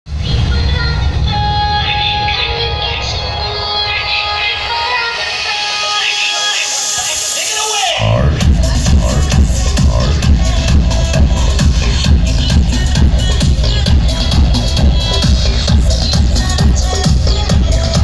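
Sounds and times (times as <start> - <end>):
dance music with vocals: 0.1 - 18.0.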